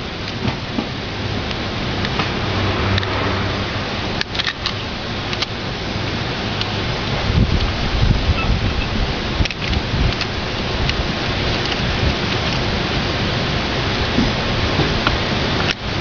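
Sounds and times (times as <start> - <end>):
low rumbling wind gusts: 0.0 - 16.0
steady outdoor hiss: 0.0 - 16.0.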